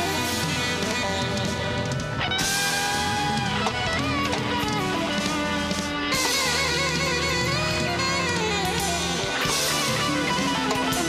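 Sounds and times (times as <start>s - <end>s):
electric guitar bending notes: 0.0s - 11.0s
live band playing: 0.0s - 11.0s.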